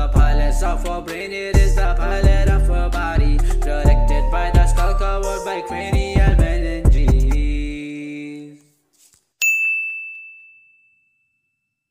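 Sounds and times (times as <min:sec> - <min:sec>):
bright ding sound effect: 0:09.4 - 0:11.2.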